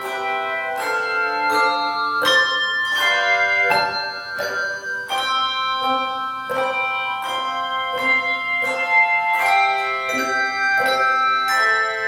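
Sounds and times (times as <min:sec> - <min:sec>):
handbell choir ringing chords: 0:00.0 - 0:12.0.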